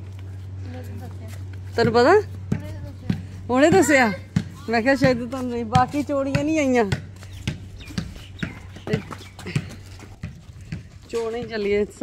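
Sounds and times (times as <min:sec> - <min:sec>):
footsteps on pavement: 0:00.0 - 0:12.0
steady low hum: 0:00.0 - 0:12.0.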